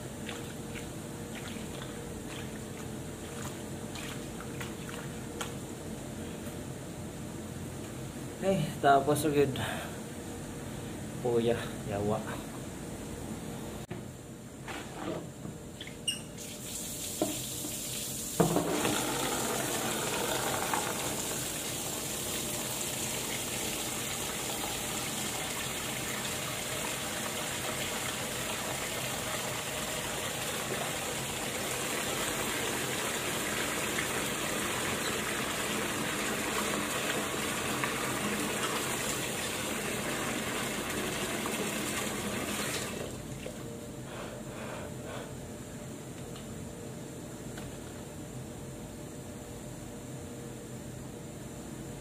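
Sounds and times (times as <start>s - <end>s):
tap water running into washbasin: 16.4s - 43.6s.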